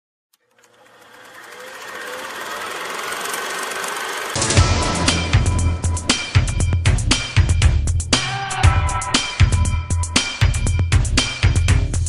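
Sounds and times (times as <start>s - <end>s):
rapid mechanical clatter: 0.4s - 4.6s.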